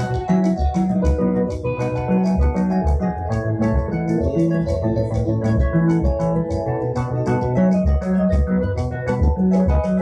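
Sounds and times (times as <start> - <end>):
bass guitar line: 0.0 - 10.0
electronic keyboard chords: 0.0 - 10.0.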